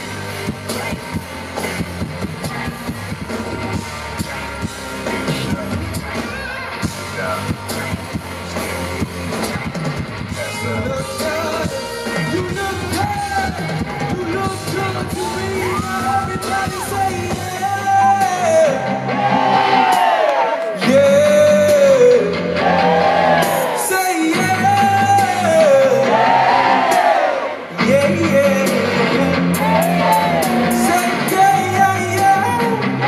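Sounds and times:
live pop band: 0.0 - 33.0
man singing: 2.4 - 19.1, 20.7 - 22.6, 23.5 - 26.3, 27.7 - 33.0.

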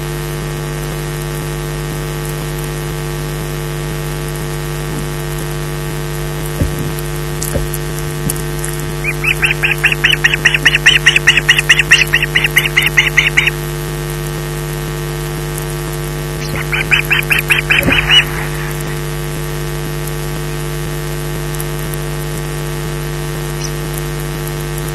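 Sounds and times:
steady electrical hum: 2.0 - 24.9
high piping bird calls: 8.9 - 13.6, 16.4 - 19.3.

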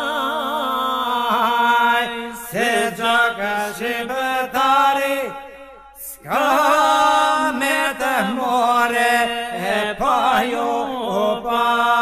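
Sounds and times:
man singing ornamented melody: 0.0 - 12.0
men singing steady drone: 0.0 - 12.0.

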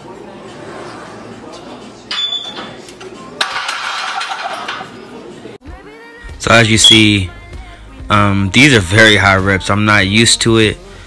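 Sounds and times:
murmur of background voices: 0.0 - 3.5, 4.7 - 5.6.

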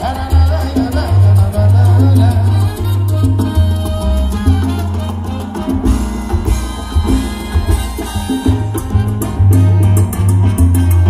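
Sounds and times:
live salsa band: 0.0 - 11.0.

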